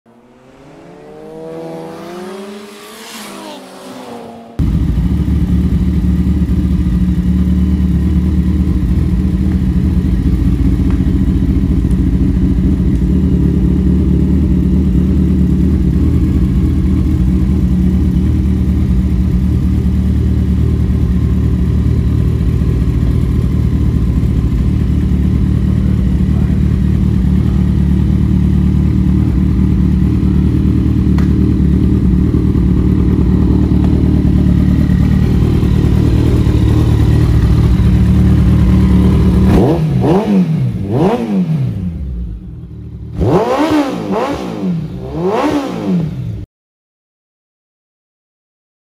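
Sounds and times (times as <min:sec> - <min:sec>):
motorcycle engine idling: 0:04.6 - 0:45.6.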